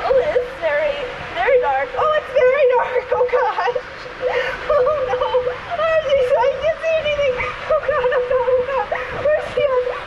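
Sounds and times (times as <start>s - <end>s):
high-pitched squeals and laughs: 2.4s - 10.0s.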